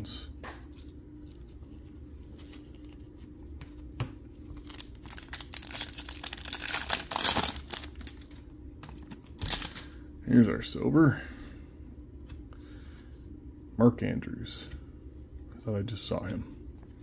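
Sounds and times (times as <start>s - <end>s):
faint steady hum: 0.0s - 17.0s
foil wrapper tearing and crinkling: 4.5s - 8.4s, 9.0s - 10.0s.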